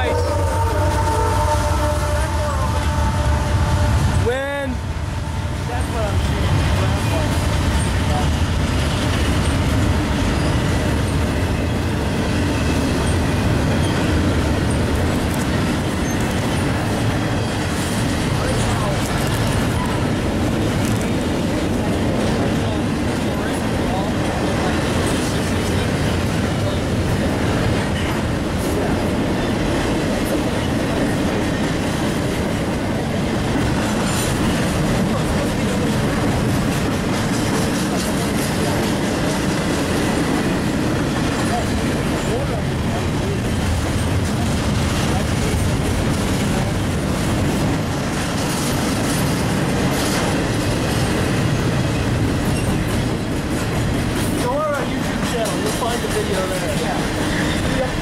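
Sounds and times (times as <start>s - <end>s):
freight train wheels on rails: 0.0s - 58.0s.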